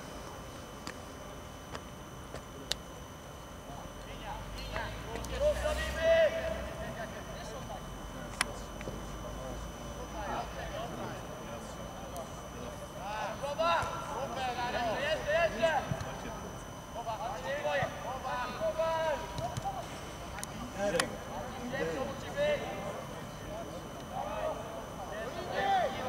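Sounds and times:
footballers shouting: 24.2 - 26.0.

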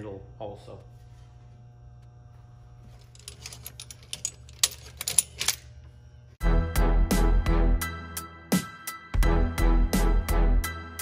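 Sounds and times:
metal clamps clinking: 3.0 - 5.7.

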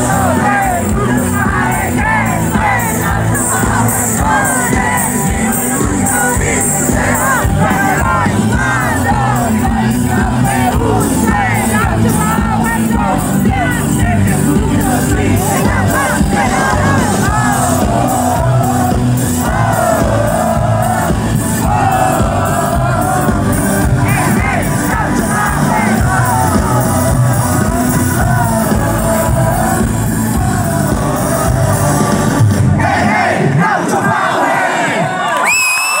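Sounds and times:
rock band playing live: 0.0 - 33.2
voices singing: 0.0 - 35.4
crowd cheering: 0.0 - 36.0.

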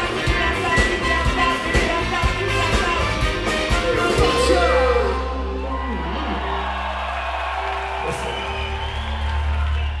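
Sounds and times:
live band music: 0.0 - 6.7
crowd noise: 0.0 - 10.0.

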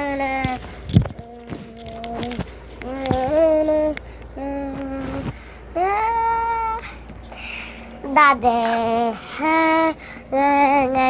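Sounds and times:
soft breathy noise: 6.8 - 8.1, 9.1 - 10.4.

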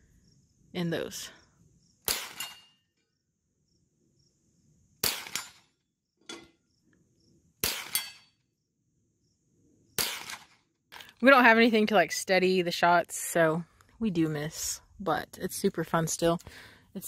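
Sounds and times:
insect chirring: 1.4 - 2.1, 2.8 - 5.0, 8.4 - 10.0
rifle shots: 2.1 - 2.6, 5.0 - 5.6, 7.6 - 8.2, 10.0 - 10.6.

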